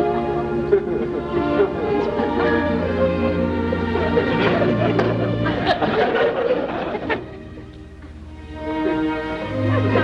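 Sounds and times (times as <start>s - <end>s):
orchestra playing: 0.0s - 10.0s
audience laughter: 0.1s - 7.8s, 8.7s - 10.0s.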